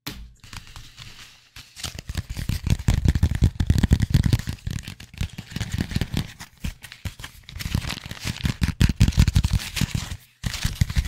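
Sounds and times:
book pages rustling: 0.4 - 11.0.

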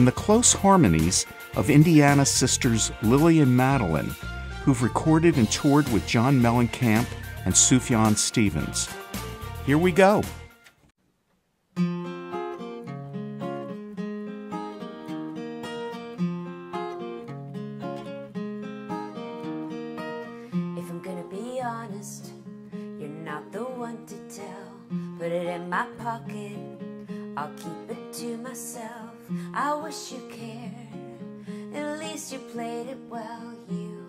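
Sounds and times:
solo acoustic guitar: 0.0 - 10.3, 11.7 - 34.0
woman singing: 8.9 - 9.4, 20.7 - 34.0.

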